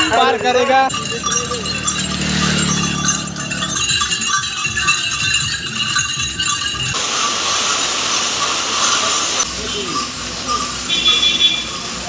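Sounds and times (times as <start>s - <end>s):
small bells jingling: 0.0s - 12.0s
heavy rain hissing: 7.0s - 10.9s.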